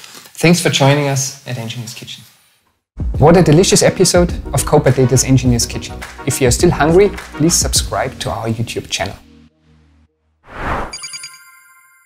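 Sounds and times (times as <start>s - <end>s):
whoosh: 10.5s - 11.0s
bright ringing chime: 10.9s - 12.0s.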